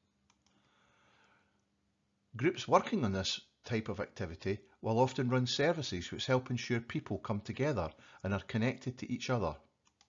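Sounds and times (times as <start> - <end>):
faint clicks: 0.2 - 1.7.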